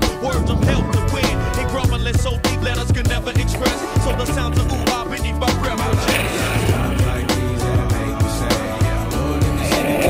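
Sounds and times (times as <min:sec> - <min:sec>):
hip-hop backing track: 0:00.0 - 0:10.0
longboard wheels rolling on asphalt: 0:02.5 - 0:10.0
longboard sliding scraping rasp: 0:03.5 - 0:08.8.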